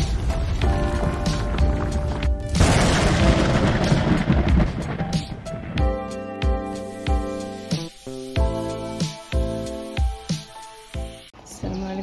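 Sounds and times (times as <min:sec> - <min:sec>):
deep boom: 0:00.0 - 0:06.0.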